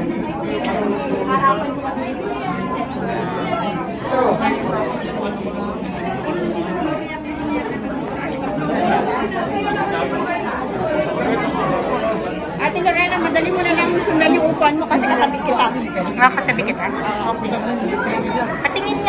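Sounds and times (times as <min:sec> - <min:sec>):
murmur of overlapping voices: 0:00.0 - 0:19.0.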